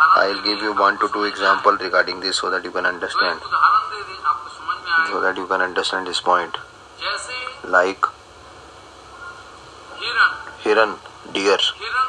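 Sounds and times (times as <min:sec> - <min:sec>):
faint steady background hiss: 0:00.0 - 0:12.0
man speaking: 0:00.2 - 0:03.4, 0:05.0 - 0:06.7, 0:07.6 - 0:08.2, 0:10.6 - 0:11.8.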